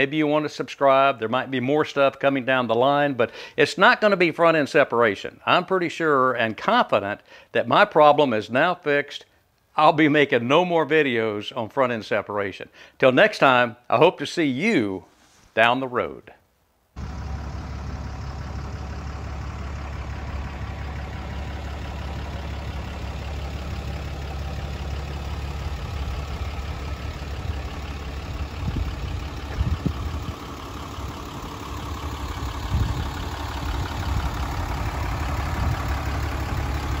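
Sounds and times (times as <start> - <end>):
vehicle engine idling: 17.0 - 37.0.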